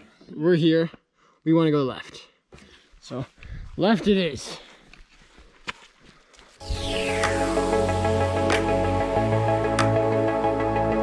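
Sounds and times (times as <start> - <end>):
falling swoosh: 6.6 - 9.9
upbeat electronic music: 6.6 - 11.0.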